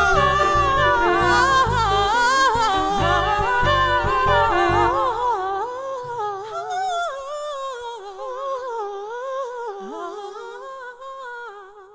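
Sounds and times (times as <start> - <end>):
women singing together: 0.0 - 5.7.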